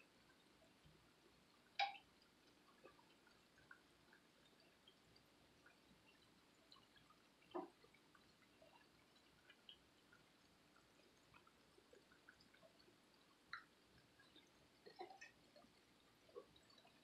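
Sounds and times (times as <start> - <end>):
food deep-frying in oil: 0.0 - 17.0.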